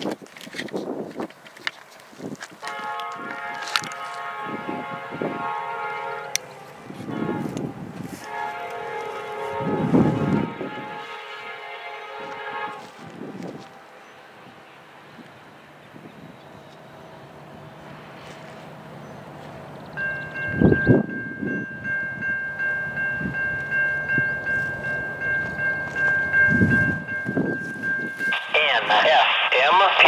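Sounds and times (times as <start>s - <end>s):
railroad crossing bell ringing: 19.0s - 28.4s
scanner radio voice: 28.3s - 30.0s.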